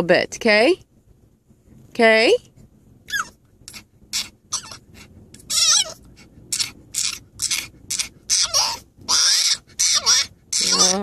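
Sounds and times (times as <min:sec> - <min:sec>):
dog whining and squealing: 0:03.0 - 0:11.0.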